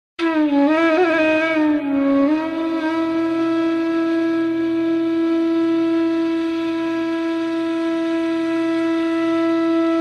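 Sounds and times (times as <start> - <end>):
flute holding long note: 0.2 - 10.0.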